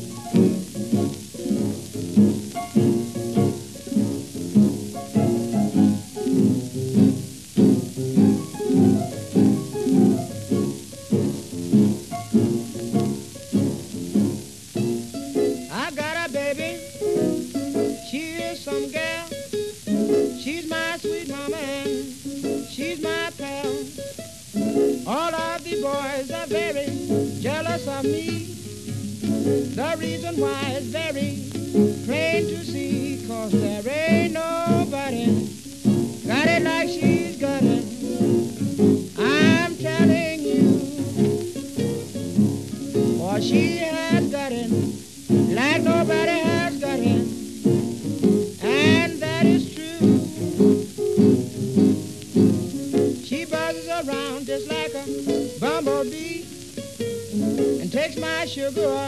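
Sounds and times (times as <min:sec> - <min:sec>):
piano chords: 0:00.0 - 0:15.2, 0:26.8 - 0:54.5
bent guitar notes sliding: 0:00.0 - 0:59.0
record hiss: 0:00.0 - 0:59.0.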